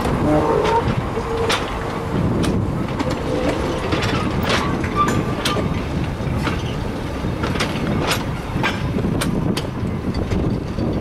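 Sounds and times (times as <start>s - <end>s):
train wheels rumbling on rails: 0.0s - 11.0s
wheel squeal: 0.2s - 2.2s, 3.0s - 5.8s.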